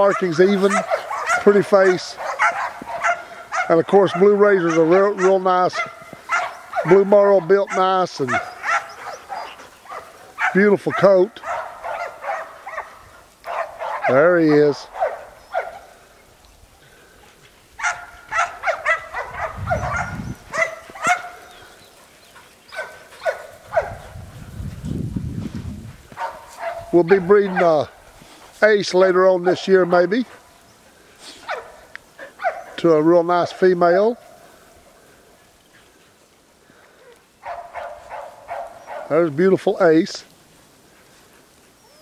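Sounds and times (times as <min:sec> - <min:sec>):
dogs yipping: 0:00.0 - 0:16.0, 0:17.7 - 0:24.4, 0:26.1 - 0:27.8, 0:29.4 - 0:32.9, 0:37.0 - 0:39.2, 0:41.0 - 0:42.0.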